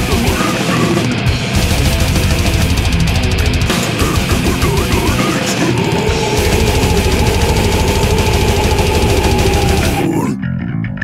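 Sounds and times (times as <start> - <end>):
double-kick bass drumming: 6.1 - 10.0.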